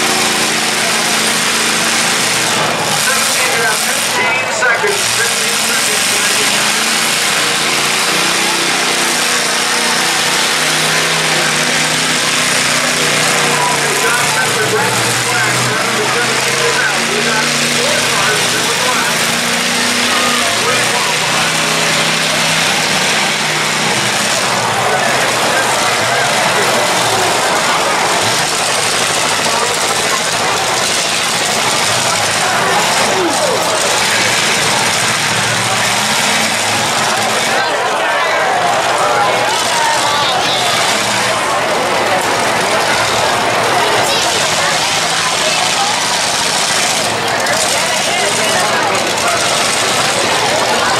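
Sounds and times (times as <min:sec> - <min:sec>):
car engines revving: 0:00.0 - 0:50.9
crowd chatter: 0:00.0 - 0:50.9.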